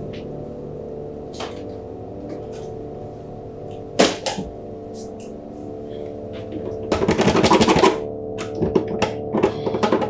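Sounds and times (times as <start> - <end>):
musical drone: 0.0 - 10.0.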